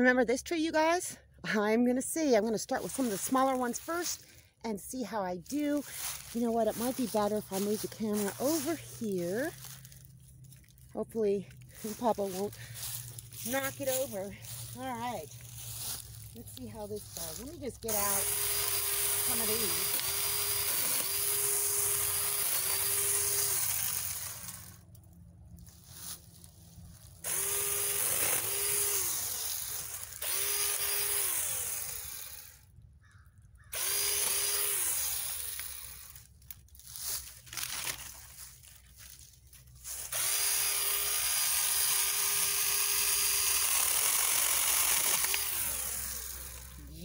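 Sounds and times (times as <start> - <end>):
mini chainsaw cutting limbs: 2.4 - 4.4, 5.4 - 47.0.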